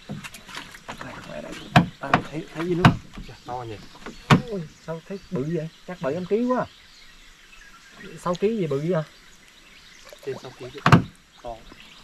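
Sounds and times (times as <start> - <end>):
knocks and clunks on wooden boat: 0.0 - 4.6, 10.8 - 11.9.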